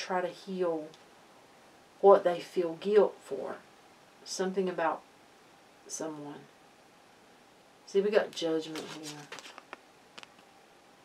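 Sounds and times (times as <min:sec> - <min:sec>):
faint clicks and taps of a card: 0:08.8 - 0:10.5.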